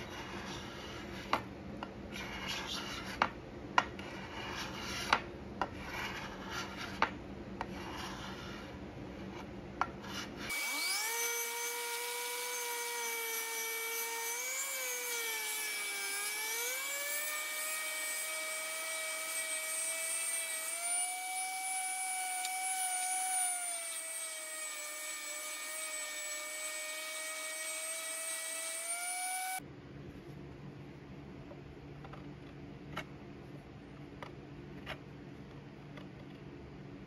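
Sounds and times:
orbital sander whining on wood: 0:10.5 - 0:29.6.

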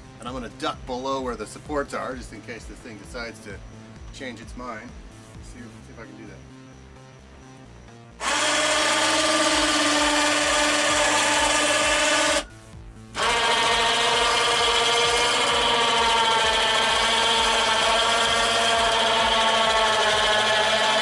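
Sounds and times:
electric winch motor whining: 0:08.2 - 0:12.5, 0:13.1 - 0:21.0.

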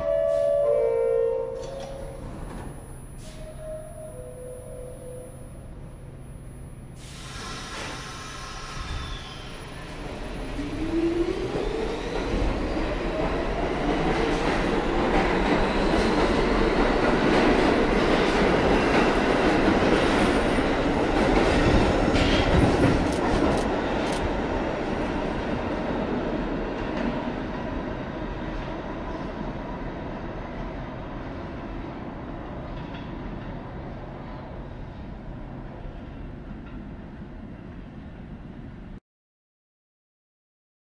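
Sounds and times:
subway traction motors whining: 0:00.0 - 0:37.9
train rumble and wheel clatter: 0:00.0 - 0:39.0.

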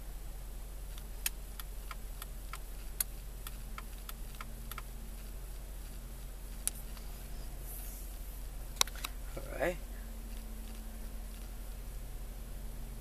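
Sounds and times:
car engine idling: 0:00.0 - 0:13.0
turn signal ticking: 0:00.9 - 0:07.0.

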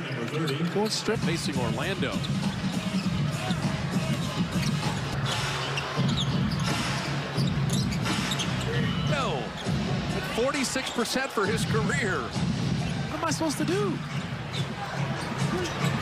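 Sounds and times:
arena crowd din: 0:00.0 - 0:16.0.

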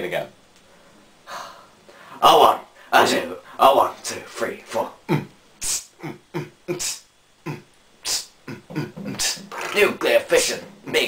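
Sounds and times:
beatboxing: 0:05.1 - 0:09.7.

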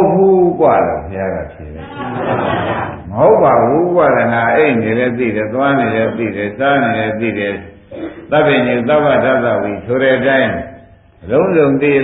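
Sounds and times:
man preaching: 0:00.0 - 0:02.2, 0:03.0 - 0:12.0.

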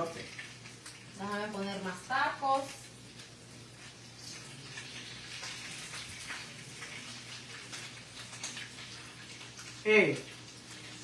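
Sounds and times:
food frying in hot oil: 0:00.0 - 0:11.0.

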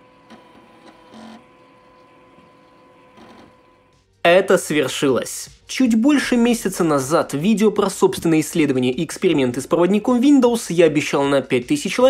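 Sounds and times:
faint electrical hum: 0:00.0 - 0:04.0.

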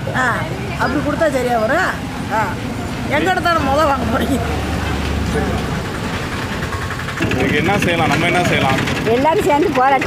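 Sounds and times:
vehicle engine hum: 0:00.0 - 0:10.0
woman speaking: 0:00.1 - 0:04.4, 0:09.1 - 0:10.0.

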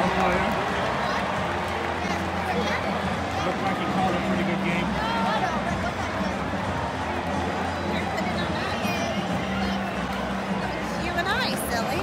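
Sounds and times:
crowd chatter: 0:00.0 - 0:12.0
music over stadium speakers: 0:00.0 - 0:12.0.

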